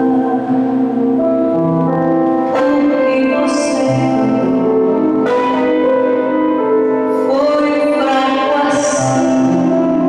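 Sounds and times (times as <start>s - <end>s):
bell-like instrumental music: 0.0s - 8.9s.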